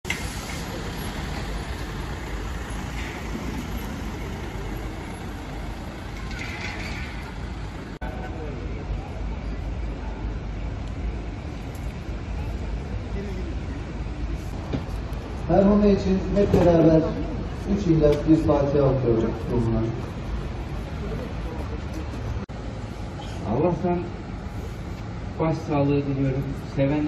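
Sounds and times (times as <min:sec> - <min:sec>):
traffic noise: 0:00.0 - 0:27.0
faint voices of people: 0:08.0 - 0:15.6, 0:19.1 - 0:22.4.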